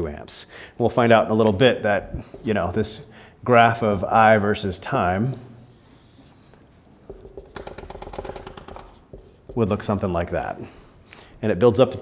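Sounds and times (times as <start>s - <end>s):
marker strokes on whiteboard: 5.4s - 10.0s.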